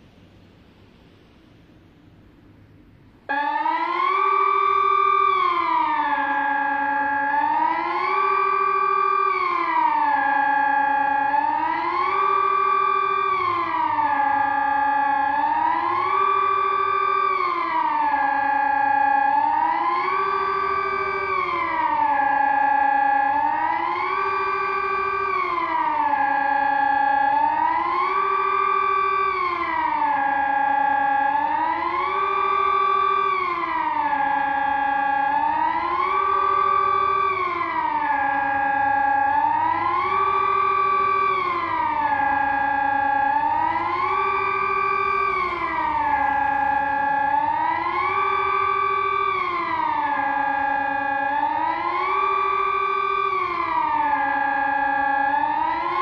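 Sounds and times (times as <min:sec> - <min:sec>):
civil defence siren rising and falling: 0:02.7 - 0:56.0.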